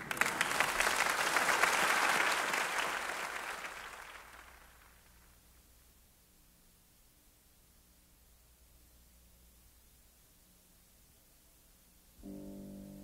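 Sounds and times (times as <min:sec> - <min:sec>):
audience applauding: 0:00.0 - 0:05.2
faint tape hiss: 0:00.0 - 0:13.0.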